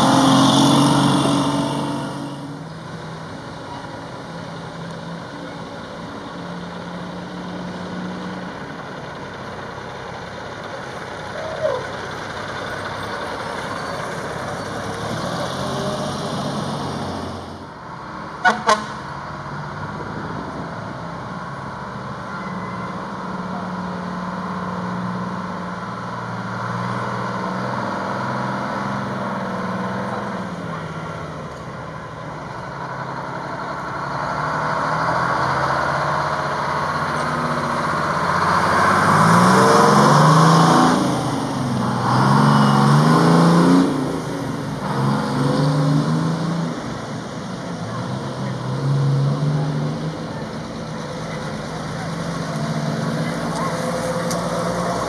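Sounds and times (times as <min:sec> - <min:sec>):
fire engines running: 0:00.0 - 0:55.0
truck accelerating through gears: 0:00.0 - 0:55.0.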